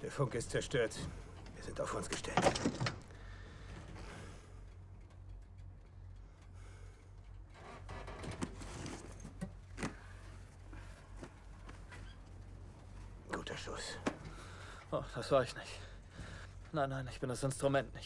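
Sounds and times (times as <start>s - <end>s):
faint rustling: 0.0s - 17.7s
low steady rumble: 0.0s - 18.0s.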